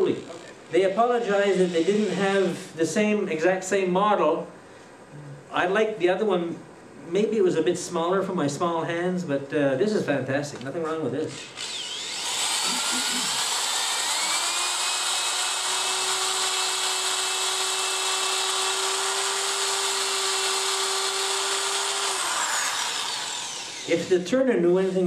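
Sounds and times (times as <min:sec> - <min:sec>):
power drill sanding: 0:00.0 - 0:02.6, 0:11.3 - 0:24.1.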